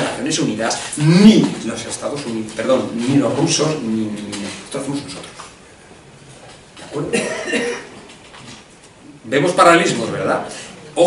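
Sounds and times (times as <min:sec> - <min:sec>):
person coughing: 0:07.1 - 0:08.0.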